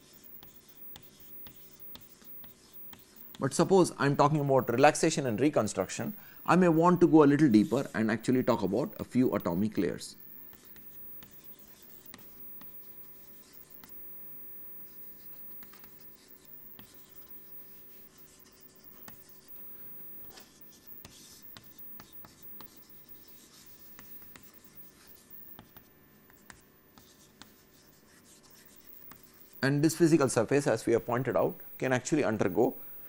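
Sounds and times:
chalk scratching on blackboard: 0.0 - 4.9, 5.5 - 33.0
chalk tapping on blackboard: 0.1 - 3.4, 10.5 - 29.6.

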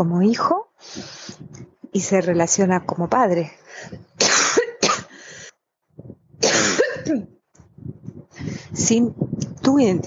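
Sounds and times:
person coughing: 4.2 - 5.1, 6.4 - 7.3.

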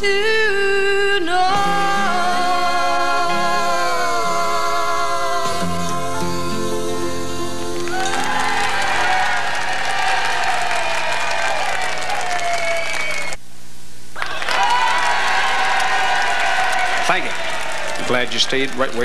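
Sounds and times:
audience applauding and cheering: 7.4 - 13.4, 14.2 - 19.0.

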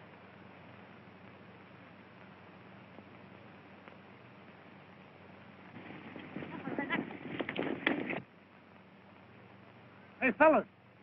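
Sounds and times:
soundtrack hiss: 0.0 - 11.0.

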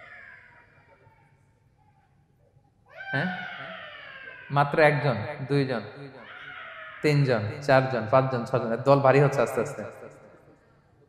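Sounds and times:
man's drawn-out voice: 3.1 - 3.5, 4.5 - 6.1, 7.0 - 10.1.

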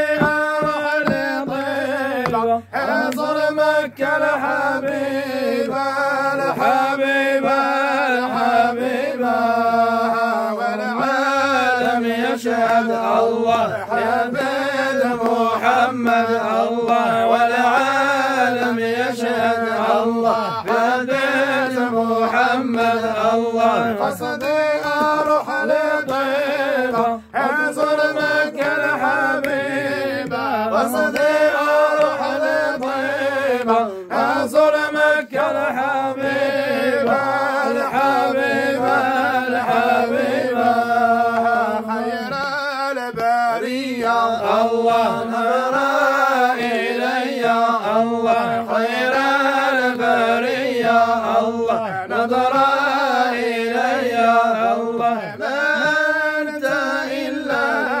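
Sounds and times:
men chanting in unison: 0.0 - 58.0.

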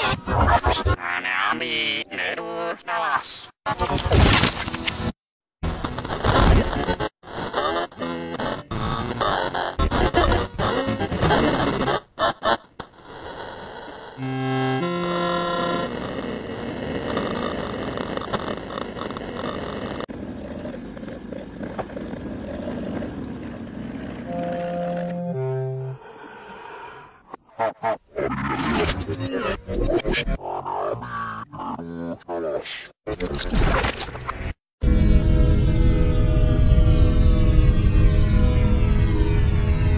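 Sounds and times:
distorted noisy din: 5.6 - 20.1
stepped synthetic tones: 5.6 - 20.1
stuttering cartoon soundtrack: 5.9 - 15.9.

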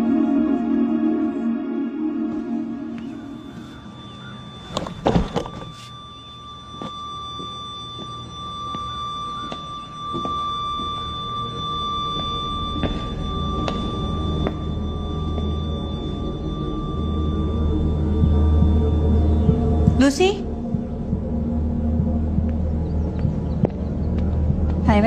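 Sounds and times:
high drone tone: 0.0 - 25.0
low rumble: 1.3 - 25.0.

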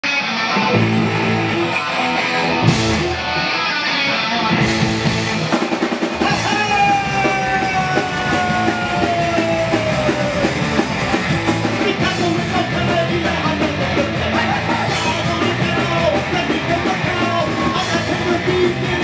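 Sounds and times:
punk rock band playing live: 0.0 - 19.0.

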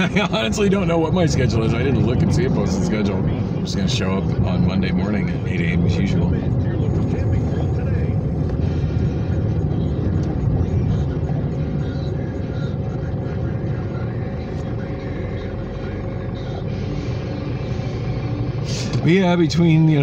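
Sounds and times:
car engine and road rumble: 0.0 - 20.0.

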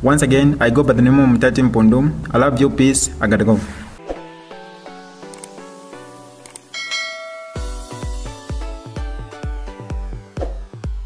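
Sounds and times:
background music: 0.0 - 11.0
sharp clicks: 5.2 - 5.6, 6.4 - 6.7
bell ding: 6.7 - 8.3
dance beat with bass kicks: 7.6 - 11.0.

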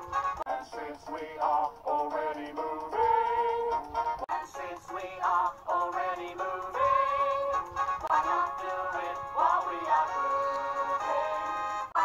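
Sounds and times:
musical backing: 0.0 - 12.0
cartoon characters singing: 0.5 - 12.0.

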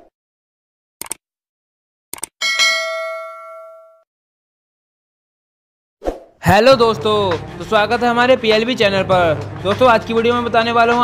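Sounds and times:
bright bell ding: 2.4 - 4.0.

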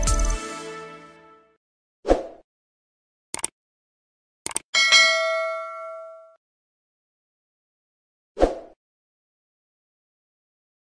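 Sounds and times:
notification bell ding: 4.8 - 6.4.

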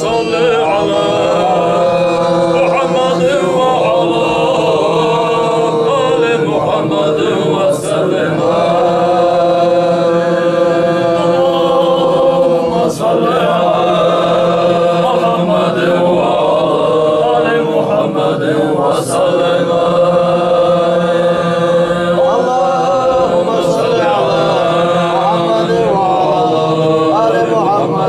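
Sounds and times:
man chanting: 0.0 - 28.0.

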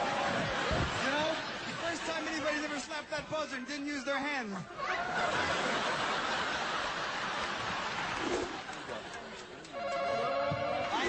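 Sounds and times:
studio audience laughter: 0.1 - 2.9, 4.8 - 9.4.

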